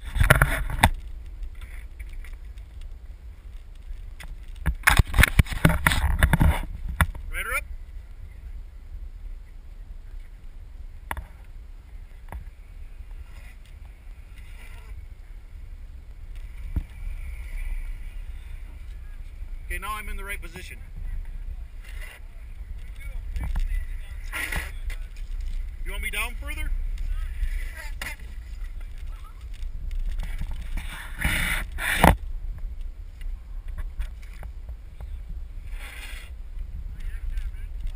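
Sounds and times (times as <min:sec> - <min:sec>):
longboard wheels rolling on asphalt: 0:00.0 - 0:37.9
wind rumbling on microphone: 0:00.0 - 0:37.9
scraping hiss: 0:35.6 - 0:36.4.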